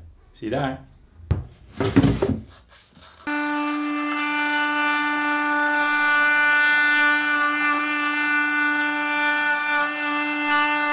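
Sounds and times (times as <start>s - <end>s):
router whining: 3.3s - 10.9s.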